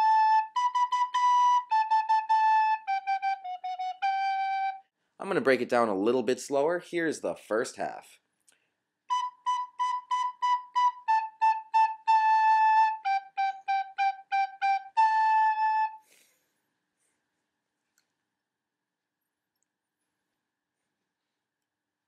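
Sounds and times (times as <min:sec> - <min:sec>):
recorder playing slow melody: 0:00.0 - 0:04.8, 0:09.1 - 0:16.1.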